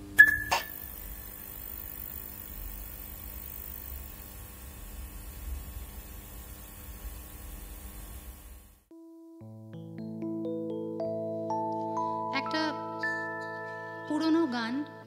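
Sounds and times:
low electrical hum: 0.0s - 8.9s
high ping: 0.2s - 0.8s
sharp click: 0.2s - 0.8s.

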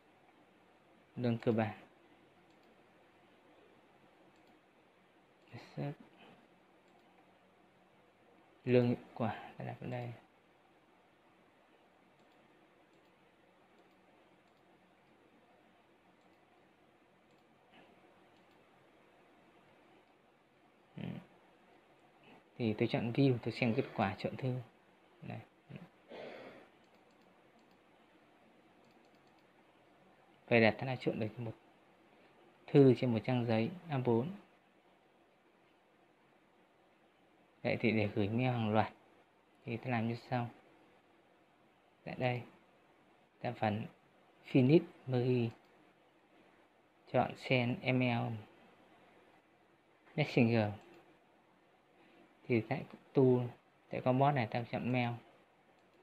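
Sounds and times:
computer mouse clicks: 2.4s - 2.8s, 4.2s - 4.7s, 6.4s - 7.3s, 12.1s - 15.2s, 16.2s - 16.6s, 17.2s - 18.7s, 19.9s - 20.2s, 26.8s - 27.9s, 28.7s - 29.6s, 45.5s - 45.8s, 50.7s - 51.2s, 55.7s - 56.0s.

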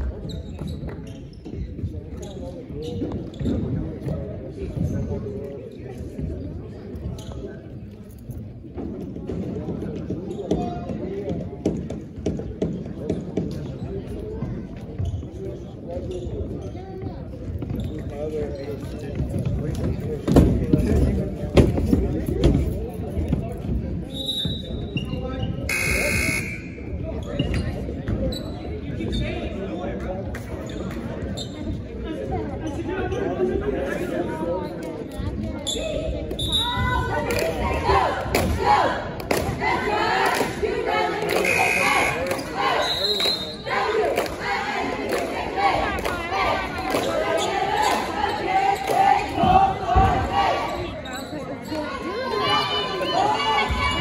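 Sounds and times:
voices echoing: 0.0s - 54.0s
gym buzzer: 25.7s - 26.7s.

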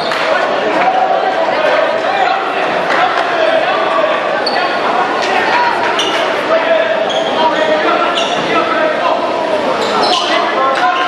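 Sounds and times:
sneaker squeaks: 0.0s - 0.4s, 4.4s - 4.9s, 5.5s - 8.8s, 9.7s - 11.0s
echoing voices: 0.0s - 11.0s.

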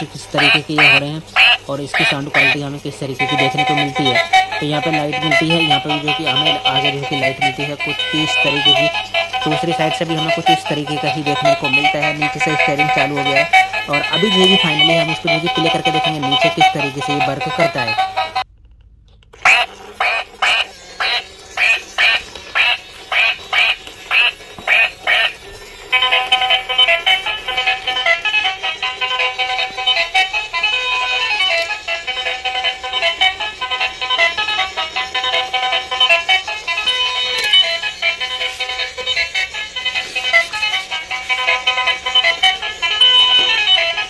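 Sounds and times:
toy electronic quacks: 0.0s - 18.4s, 19.4s - 44.0s
tinny electronic tune: 0.0s - 28.0s.

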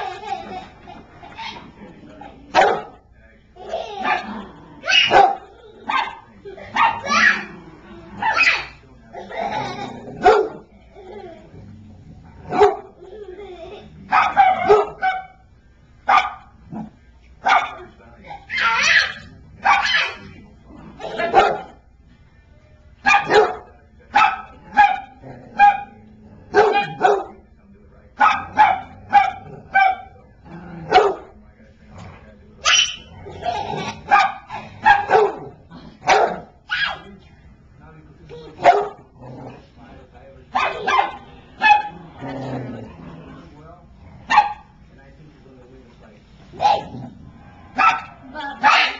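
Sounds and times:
dog barking: 2.5s - 3.0s, 4.9s - 7.4s, 10.2s - 10.6s, 12.5s - 12.9s, 14.1s - 15.4s, 16.1s - 16.5s, 17.4s - 17.8s, 18.5s - 20.2s, 21.2s - 21.8s, 23.0s - 25.9s, 26.5s - 27.4s, 28.2s - 30.1s, 30.9s - 31.3s, 34.1s - 35.5s, 36.1s - 37.0s, 38.6s - 39.0s, 40.5s - 41.9s, 44.3s - 44.7s, 46.6s - 46.9s, 47.7s - 48.9s.

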